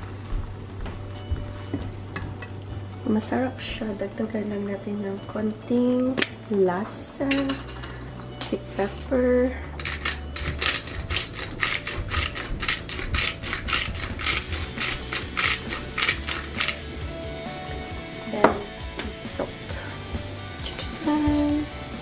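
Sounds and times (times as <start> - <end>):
pepper grinder grinding: 9.8 - 17.0.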